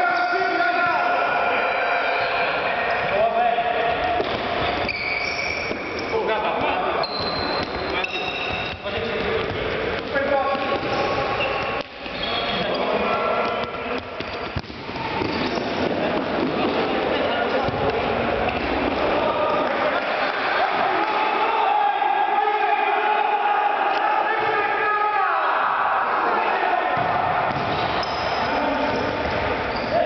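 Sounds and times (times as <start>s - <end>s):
players shouting: 10.2s - 30.0s
ball kicked and bouncing: 13.4s - 16.5s, 27.0s - 28.0s.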